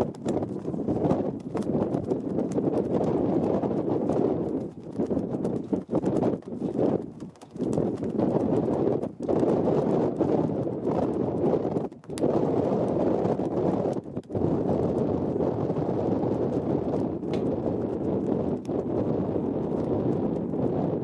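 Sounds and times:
gusty wind rumbling on microphone: 0.0s - 21.0s.

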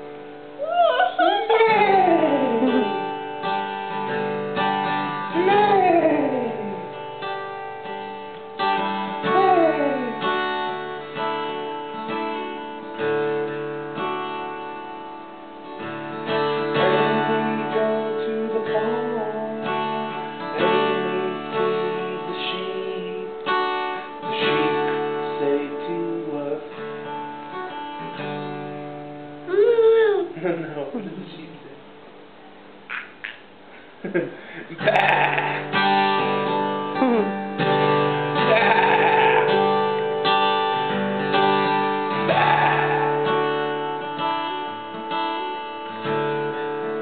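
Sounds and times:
acoustic guitar strummed slowly: 0.0s - 47.0s.

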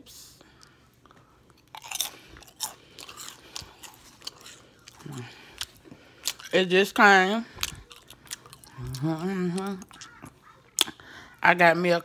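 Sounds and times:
person chewing potato chips: 1.4s - 11.2s.

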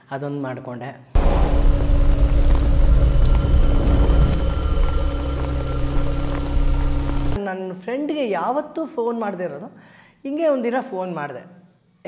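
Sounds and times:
deep steady rumble: 1.2s - 7.4s
heavy rain pouring: 1.2s - 7.4s.

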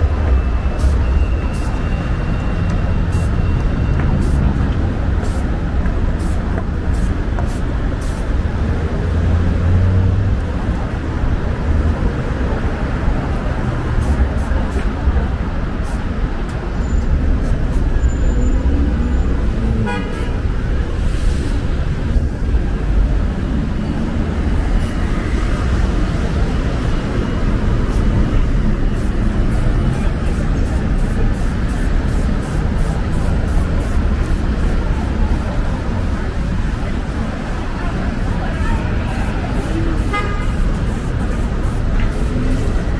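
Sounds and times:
rumble of passing vehicles: 0.0s - 42.9s
car horn toot: 19.8s - 20.4s.

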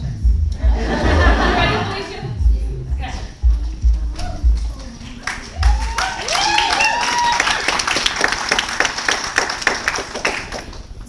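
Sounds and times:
high whoops: 4.1s - 4.7s, 5.5s - 8.3s
audience clapping and cheering: 4.1s - 11.0s.

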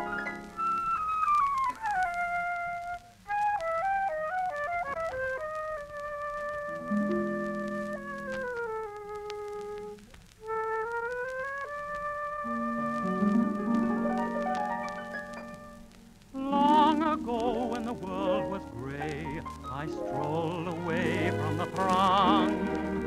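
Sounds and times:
flute-like sliding melody: 0.0s - 23.0s
orchestra playing ballad introduction: 6.6s - 8.9s, 11.3s - 23.0s.

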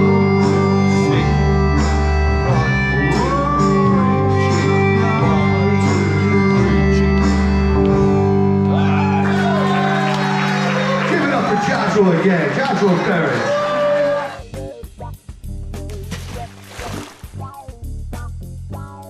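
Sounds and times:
live band music: 0.0s - 8.8s, 13.5s - 19.0s.

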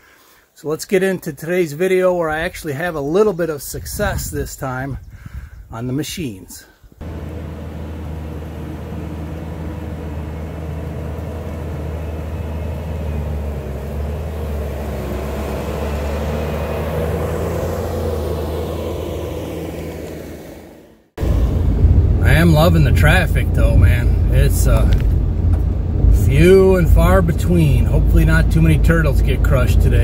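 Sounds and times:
diesel engine running: 7.0s - 30.0s.

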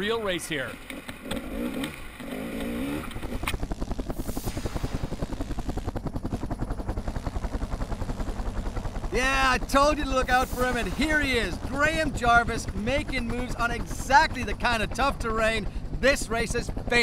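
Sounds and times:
dirt bike engine revving: 0.7s - 3.7s.

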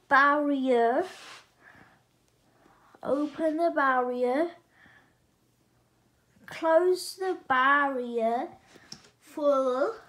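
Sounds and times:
person breathing: 1.2s - 3.0s, 4.7s - 5.3s.

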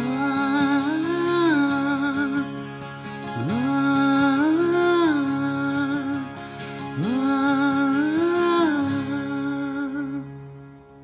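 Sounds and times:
low steady note: 0.0s - 11.0s
man singing long note: 7.0s - 10.4s.

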